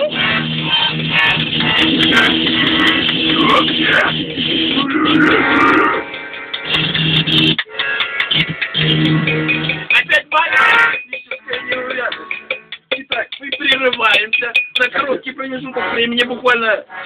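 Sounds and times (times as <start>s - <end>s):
accordion chords: 0.0s - 13.7s, 14.8s - 17.0s
plucked guitar: 0.0s - 15.9s.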